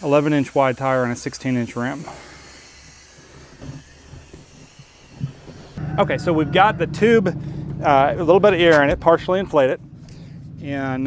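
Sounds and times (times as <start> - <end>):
compressed air hissing: 0.0 - 5.8.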